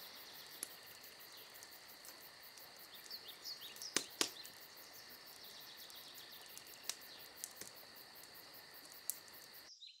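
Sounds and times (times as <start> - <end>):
insects chirring: 0.0 - 9.9
sharp clicks: 3.0 - 4.6.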